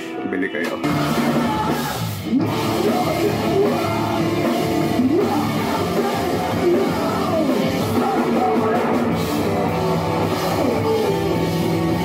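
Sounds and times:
bass guitar: 0.0 - 12.0
drum kit with cymbals: 0.0 - 12.0
electric guitars: 0.0 - 12.0.

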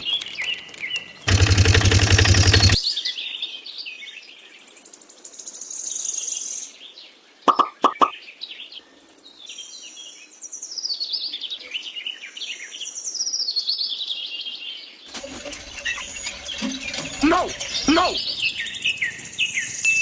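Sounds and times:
songbirds chirping and singing: 0.0 - 5.0, 6.7 - 20.0
short rising squeaks: 15.1 - 19.1.

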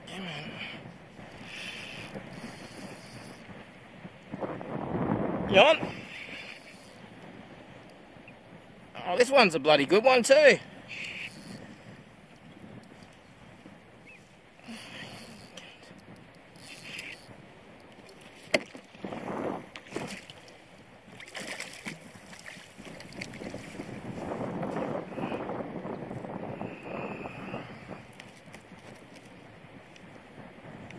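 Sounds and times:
wind on microphone: 0.0 - 9.0, 10.6 - 30.9
fish splashing in water: 21.2 - 23.6.

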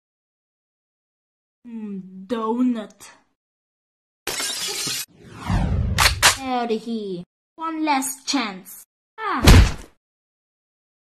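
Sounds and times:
glass shattering: 4.3 - 5.1
falling trailing sound: 5.0 - 6.4
low rumble: 5.2 - 6.4.

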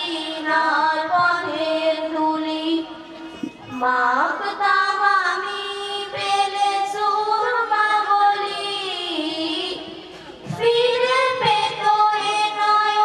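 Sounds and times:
girls singing into microphones: 0.0 - 13.0.

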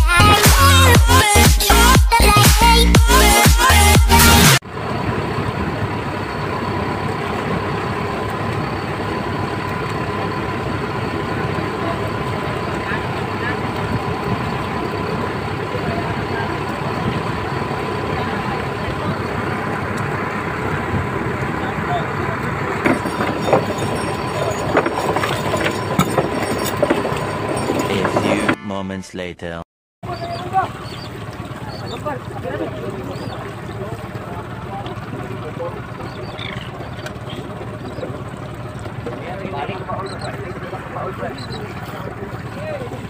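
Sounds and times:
dance music: 0.0 - 4.6, 27.9 - 29.6
boat engine running: 0.0 - 29.0, 30.0 - 43.0
water rushing past hull: 4.6 - 28.1, 30.1 - 43.0.

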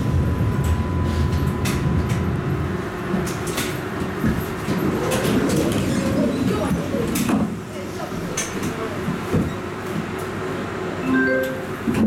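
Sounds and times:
tram running rumble: 0.0 - 12.0.

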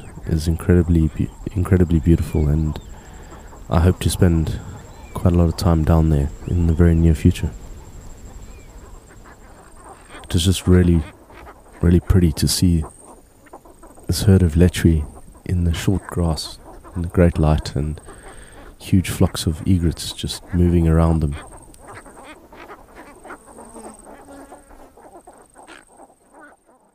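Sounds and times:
soft animal calls: 0.0 - 26.9.

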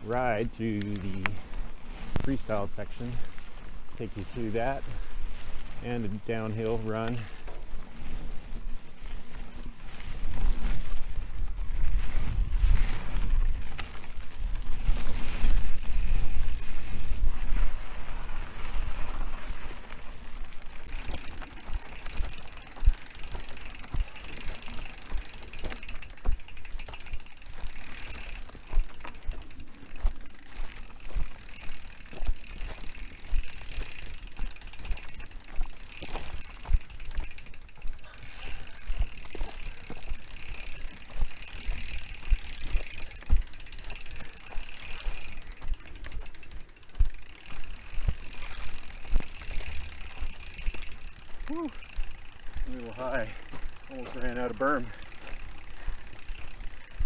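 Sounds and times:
bicycle freewheel ticking: 0.0 - 12.0, 13.0 - 57.0
bike knocking and rattling: 0.0 - 57.0
tyres crunching over dirt: 0.0 - 57.0.

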